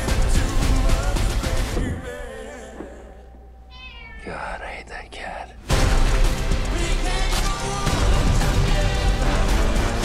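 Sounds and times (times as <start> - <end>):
loud film music: 0.0 - 3.0, 5.6 - 10.0
cat meowing: 3.7 - 4.4.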